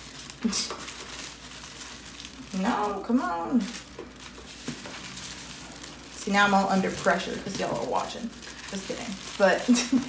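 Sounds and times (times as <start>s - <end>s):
tissue paper crinkling: 0.0s - 10.0s.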